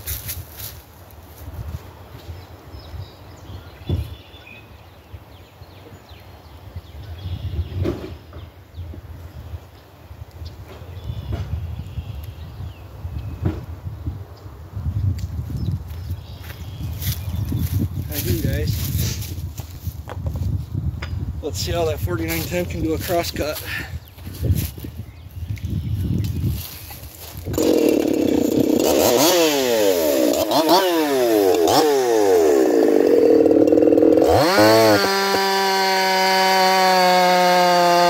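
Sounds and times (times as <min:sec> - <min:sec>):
footsteps: 0:26.0 - 0:27.5.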